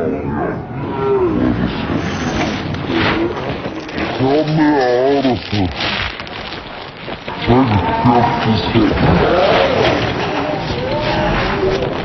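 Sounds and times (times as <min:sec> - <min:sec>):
dense noisy din: 0:00.0 - 0:12.0
slowed deep gliding voices: 0:00.0 - 0:12.0.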